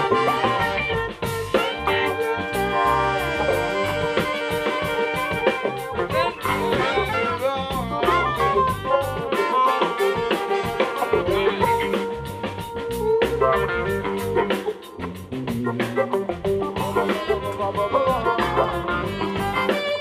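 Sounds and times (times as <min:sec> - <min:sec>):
electric keyboard: 0:00.0 - 0:20.0
funk band playing: 0:00.0 - 0:20.0
saxophone section: 0:00.0 - 0:20.0.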